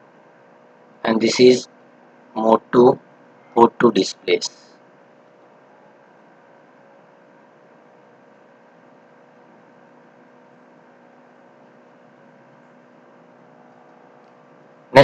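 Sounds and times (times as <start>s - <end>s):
low mains hum: 0.0s - 15.0s.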